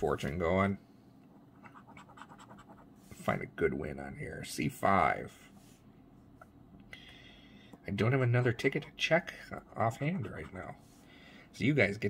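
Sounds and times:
coin scratching lottery ticket: 0:01.6 - 0:02.8.

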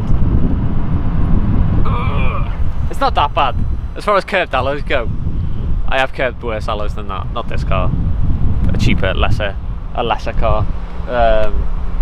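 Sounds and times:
wind buffeting microphone: 0:00.0 - 0:12.0
faint voice: 0:01.9 - 0:02.6.

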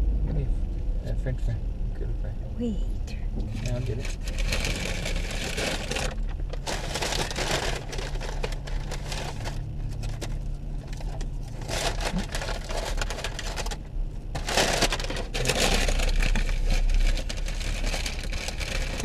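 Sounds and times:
low steady hum: 0:00.0 - 0:19.0
paper bag rustling: 0:04.0 - 0:19.0.

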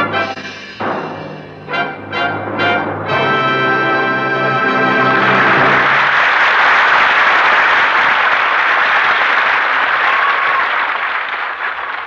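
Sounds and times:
orchestral chord: 0:00.0 - 0:06.0
audience applause: 0:04.7 - 0:12.0.

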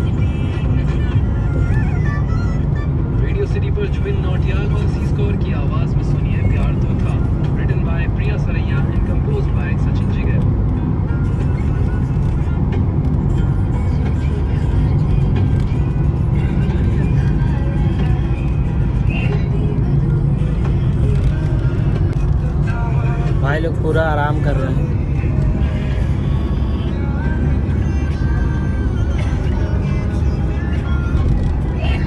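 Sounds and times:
car road and engine noise: 0:00.0 - 0:32.0
music: 0:00.0 - 0:32.0.

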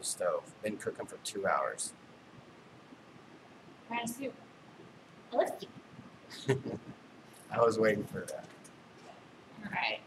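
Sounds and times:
person speaking: 0:00.0 - 0:01.9, 0:05.4 - 0:08.5.

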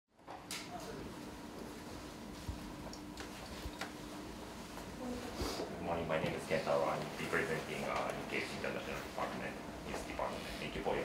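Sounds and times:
faint room hum: 0:00.2 - 0:11.0.

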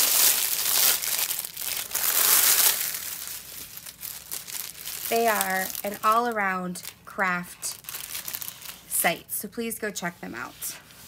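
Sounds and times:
plastic bag crinkling: 0:00.0 - 0:09.0.

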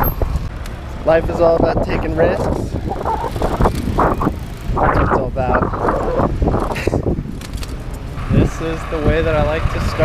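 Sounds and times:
road vibration rumble: 0:00.0 - 0:10.0
wind on microphone: 0:00.0 - 0:10.0.

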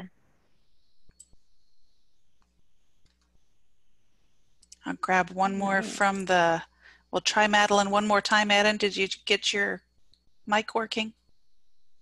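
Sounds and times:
voice speaking: 0:05.2 - 0:06.6.

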